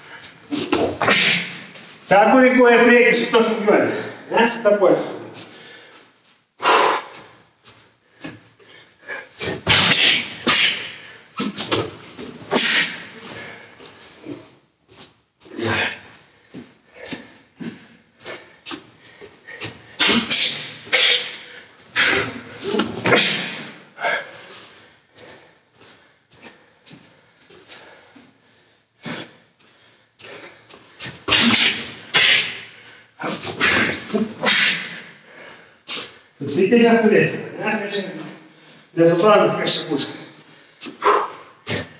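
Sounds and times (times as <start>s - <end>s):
sharp hissing exhalations: 6.6s - 7.2s, 19.5s - 22.5s, 34.4s - 36.4s
man grunting: 15.5s - 16.1s, 20.0s - 24.3s.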